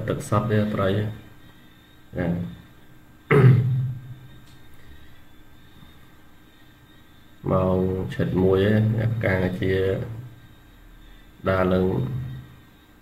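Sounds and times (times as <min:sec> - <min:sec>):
faint steady hum: 0:00.0 - 0:13.0.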